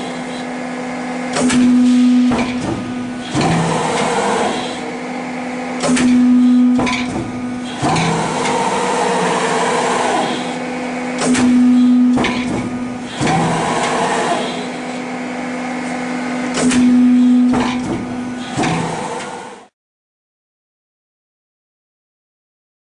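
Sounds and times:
hydraulic machine hum: 0.0 - 19.8.

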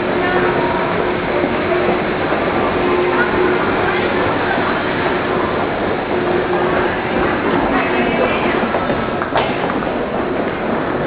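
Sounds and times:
many people walking and talking: 0.0 - 11.0.

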